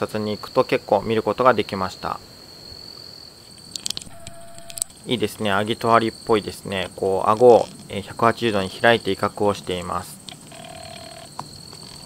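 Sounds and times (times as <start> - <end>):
night insects trilling: 0.0 - 12.0
single click: 3.8 - 4.9
brief low steady tone: 4.1 - 4.9.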